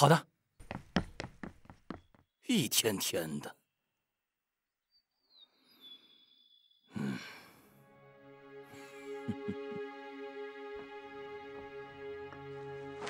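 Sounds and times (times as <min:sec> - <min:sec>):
breathy sigh: 0:06.9 - 0:07.8
dramatic soundtrack music: 0:07.6 - 0:13.0.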